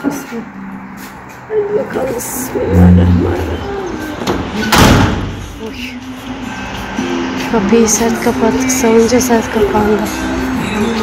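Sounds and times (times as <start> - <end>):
glass door slamming shut: 4.2 - 5.4.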